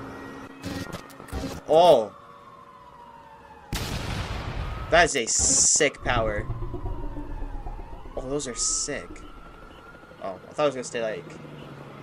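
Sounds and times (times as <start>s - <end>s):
loud rumbling explosion: 6.0s - 9.8s.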